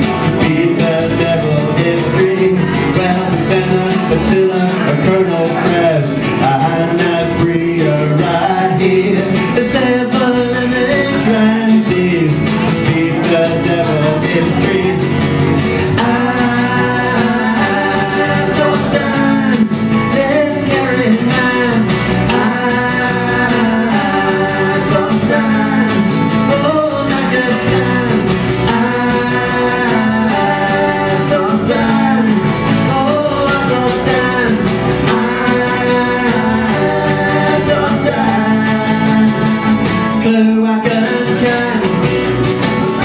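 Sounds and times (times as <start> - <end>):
people singing: 0.0 - 43.0
strummed acoustic guitars: 0.0 - 43.0.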